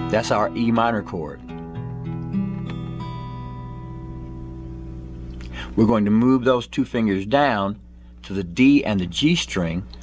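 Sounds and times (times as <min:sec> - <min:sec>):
acoustic guitar chord ringing: 0:00.0 - 0:06.4.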